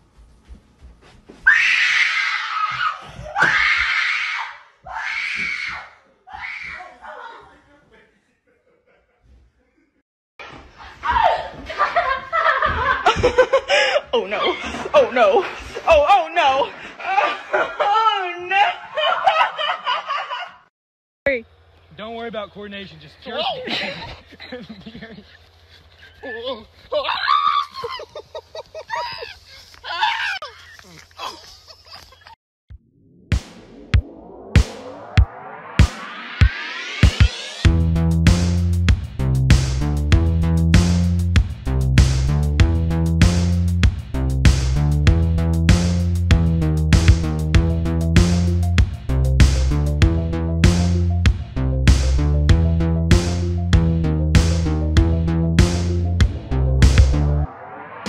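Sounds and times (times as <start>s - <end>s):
person shrieking: 26.2s - 28.1s, 28.9s - 30.6s
person screaming: 27.0s - 28.1s.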